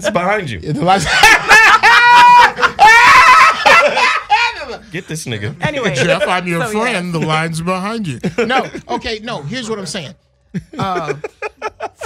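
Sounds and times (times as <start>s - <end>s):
woman laughing loudly: 1.0s - 4.8s, 10.6s - 12.0s.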